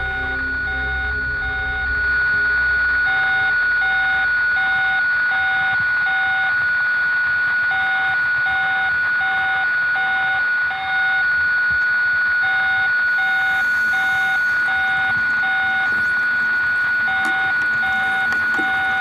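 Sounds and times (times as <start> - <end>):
steady high tone: 0.0 - 7.6, 12.3 - 19.0.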